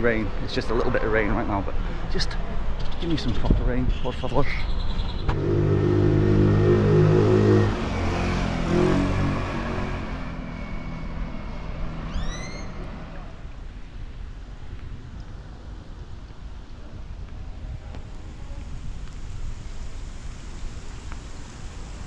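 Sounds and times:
vehicle engine humming: 5.2s - 13.8s.

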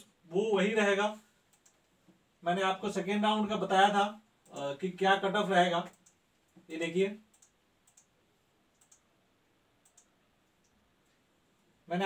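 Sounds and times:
faint sharp clicks: 1.5s - 1.9s, 5.8s - 6.7s, 7.3s - 8.1s, 8.7s - 9.1s, 9.8s - 11.2s.

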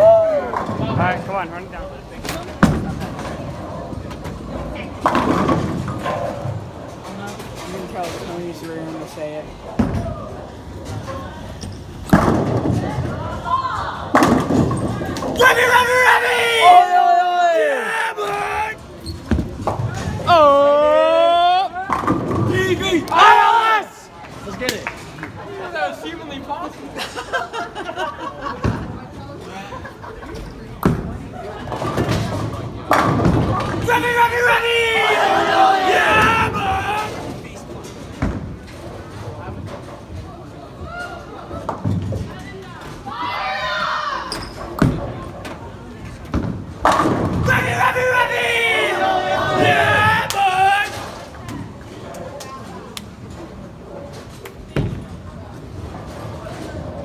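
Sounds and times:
people shouting and cheering: 0.0s - 0.8s, 15.1s - 18.8s, 22.5s - 24.1s, 33.7s - 37.2s, 47.3s - 51.2s
voices: 29.6s - 37.8s, 46.9s - 53.2s.

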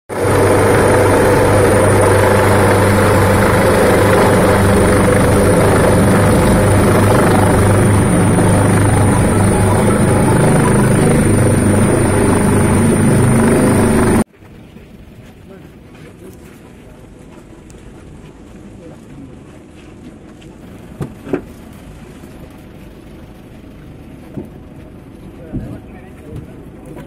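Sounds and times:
helicopter rotor and engine: 0.1s - 14.3s
high whine: 0.1s - 14.3s.

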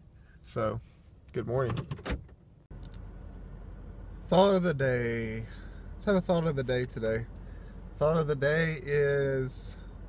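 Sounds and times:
car engine rumble inside cabin: 2.3s - 10.0s.

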